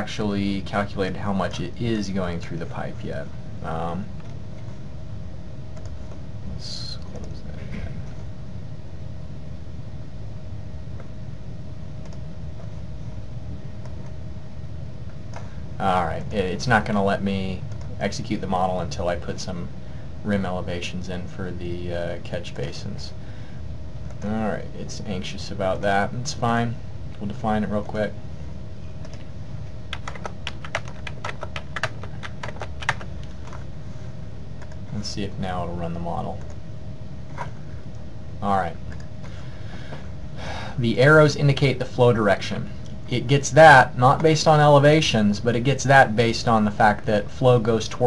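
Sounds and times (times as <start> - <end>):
faint constant tone: 0.0 - 48.0
low hum and hiss: 0.0 - 48.0
typing on computer keyboard: 29.9 - 33.1.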